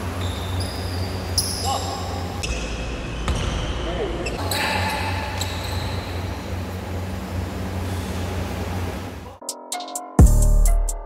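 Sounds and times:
sneakers squeaking on floor: 0.0 - 8.5.

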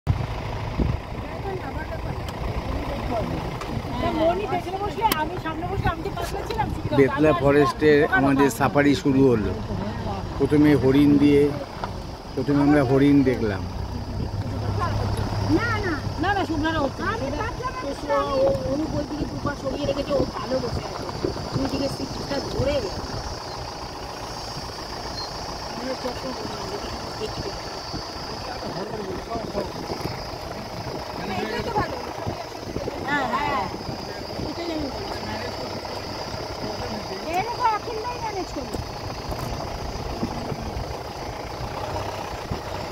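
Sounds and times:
vehicle engine rumbling: 0.0 - 42.9
vehicle bump: 0.8 - 7.8
people talking indistinctly: 0.8 - 42.9
faint voices: 1.0 - 42.9.

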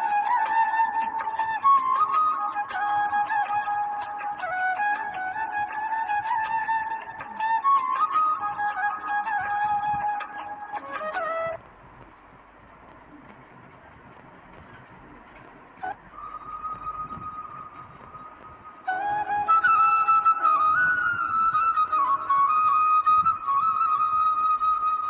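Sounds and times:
flute melody: 0.0 - 11.7, 15.8 - 25.0.

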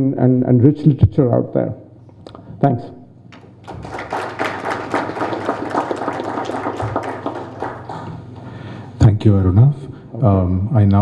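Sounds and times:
audience applauding: 3.3 - 8.6.

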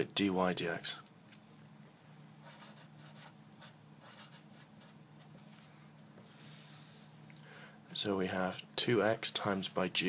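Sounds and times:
marker writing on paper: 2.4 - 5.5.

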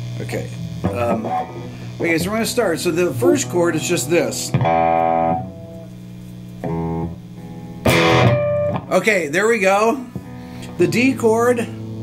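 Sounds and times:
electric guitar power chord: 0.0 - 12.0
guitar pick scratch: 0.1 - 7.1, 7.8 - 9.0.

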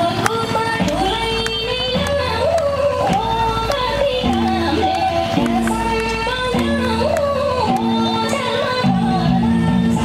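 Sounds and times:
held bass chords: 0.0 - 10.0.

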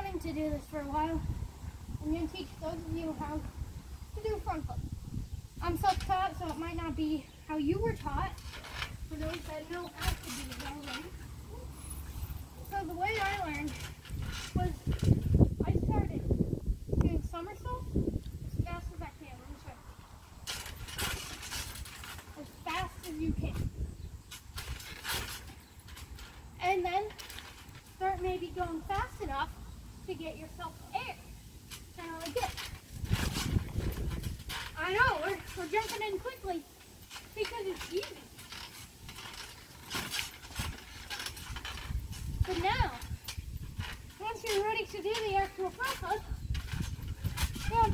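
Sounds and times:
noisy rustling bursts: 0.0 - 47.9
trampoline springs creaking: 0.0 - 47.9.

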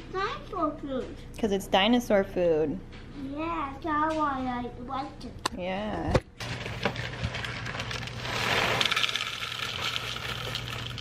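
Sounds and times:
cereal poured into plastic bowl: 6.4 - 11.0.

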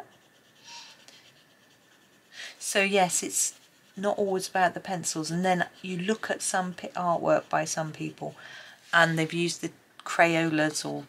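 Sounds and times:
pencil scratching on paper: 0.0 - 9.6.

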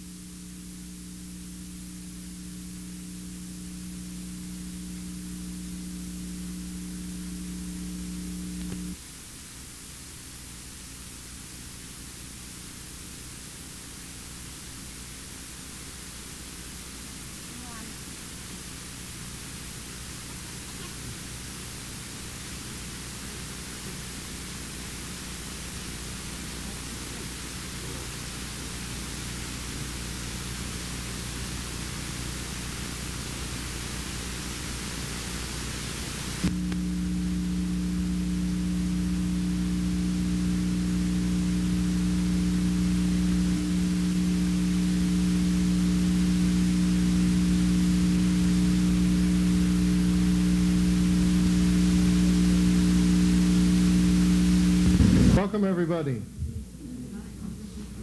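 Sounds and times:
low electrical hum: 0.0 - 58.0
tape hiss: 0.0 - 58.0.

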